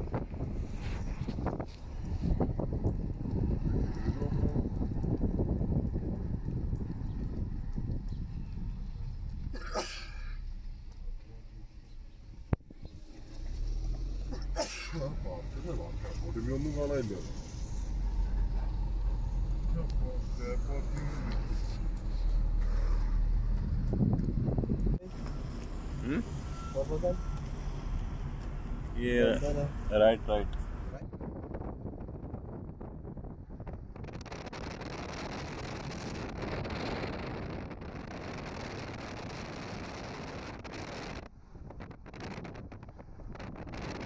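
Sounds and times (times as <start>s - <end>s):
car rumbling slowly: 0.0s - 44.0s
wind at car window: 0.0s - 44.0s
faint beeps: 26.3s - 27.4s.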